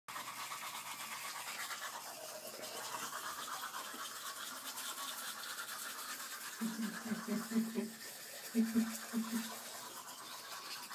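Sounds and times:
toothbrush scrubbing teeth: 0.1 - 10.9.

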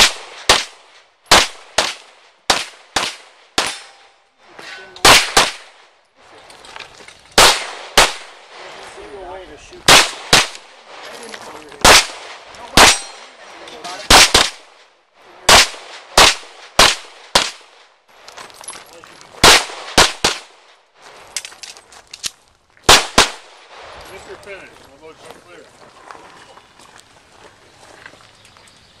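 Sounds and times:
handgun shots: 1.3 - 4.0, 11.8 - 13.2.

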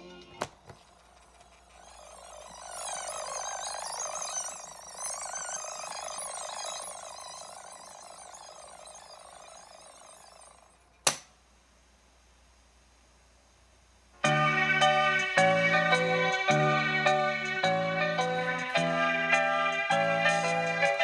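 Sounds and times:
radio static with warbling whistles: 0.6 - 10.9
sharp click: 11.0 - 11.3.

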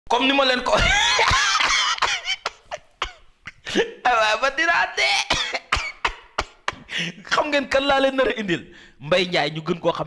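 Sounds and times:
man speaking haltingly: 0.1 - 1.2, 3.8 - 5.6, 7.1 - 10.0.

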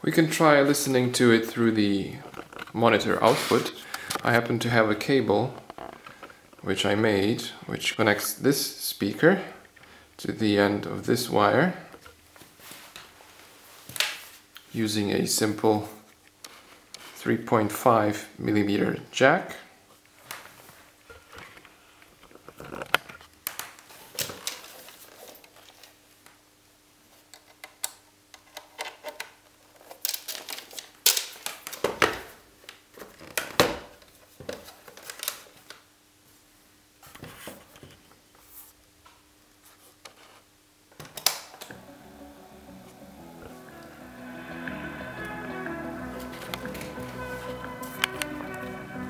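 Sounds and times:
music playing from speaker: 41.7 - 49.0.

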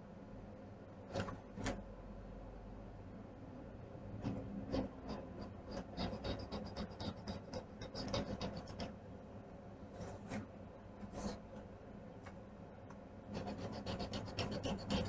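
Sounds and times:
coloring strokes scratching on paper: 4.2 - 9.0, 11.0 - 11.5, 13.3 - 15.0.

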